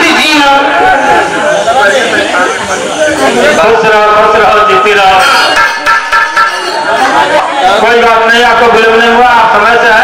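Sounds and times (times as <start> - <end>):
man speaking into a microphone: 0.0 - 0.9, 1.6 - 5.6, 7.6 - 10.0.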